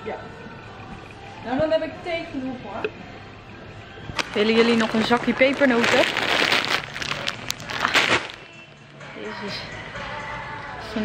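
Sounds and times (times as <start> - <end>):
plastic bag crinkling: 4.2 - 9.0.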